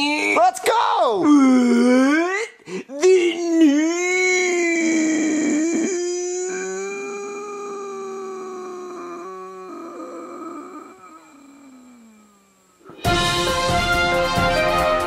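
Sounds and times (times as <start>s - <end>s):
person wailing: 0.0s - 12.7s.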